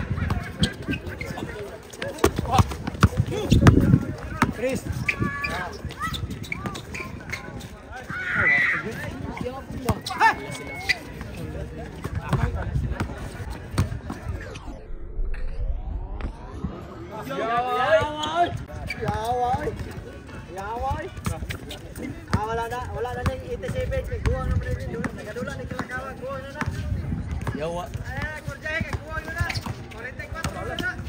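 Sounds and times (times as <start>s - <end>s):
basketball bouncing on court: 2.2s - 4.6s.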